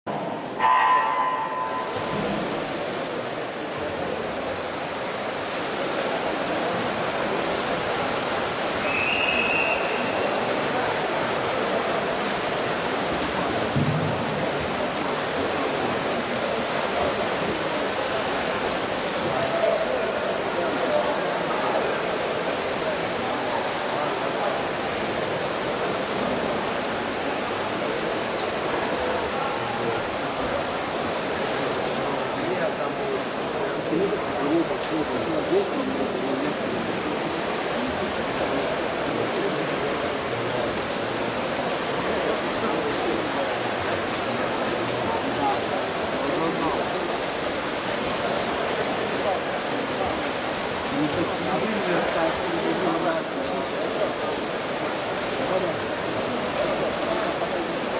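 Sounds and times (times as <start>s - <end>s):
water splashing: 0.3s - 57.9s
high whistle-like tone: 8.8s - 10.4s.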